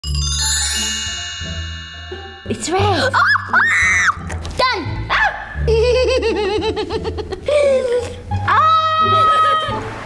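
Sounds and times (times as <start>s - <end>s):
girl giggling: 5.6s - 8.3s.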